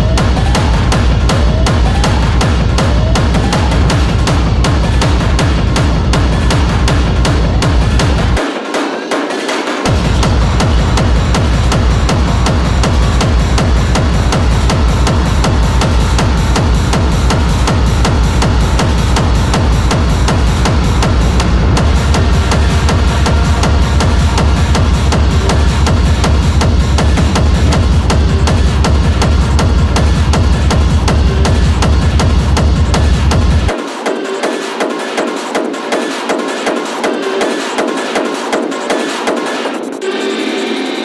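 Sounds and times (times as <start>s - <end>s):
loud hard techno: 0.0s - 41.0s.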